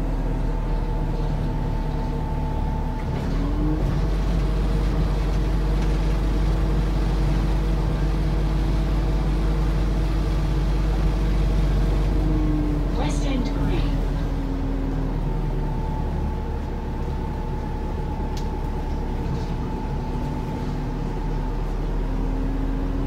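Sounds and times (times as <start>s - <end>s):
bus engine low rumble: 0.0s - 23.0s
bus motor whines: 0.0s - 23.0s.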